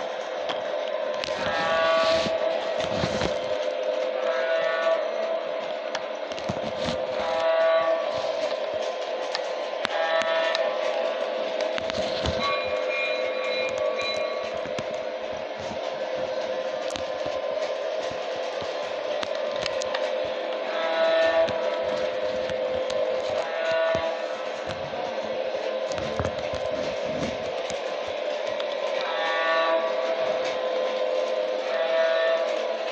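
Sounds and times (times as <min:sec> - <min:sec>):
electronic train horn: 0:00.0 - 0:32.9
toy train motor hum: 0:00.0 - 0:32.9.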